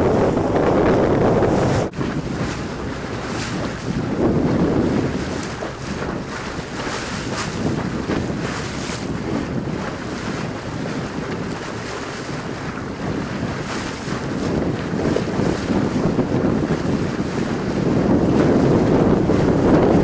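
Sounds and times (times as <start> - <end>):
choppy water around boat: 0.0 - 20.0
wind buffeting microphone: 0.0 - 20.0.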